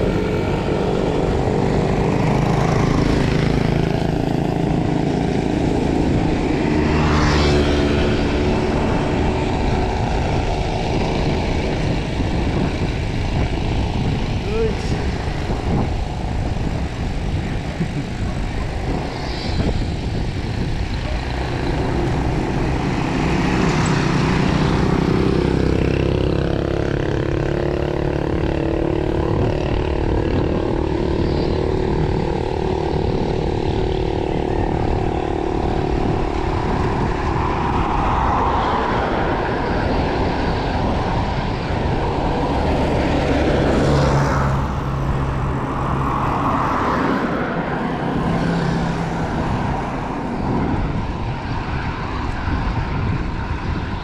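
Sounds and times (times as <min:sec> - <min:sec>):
vehicle engine passing: 0:00.0 - 0:53.8
wind buffeting microphone: 0:00.0 - 0:54.0.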